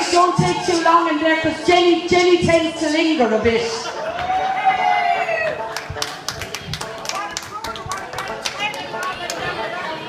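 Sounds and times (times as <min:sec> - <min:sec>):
voices chattering: 0:05.2 - 0:10.0.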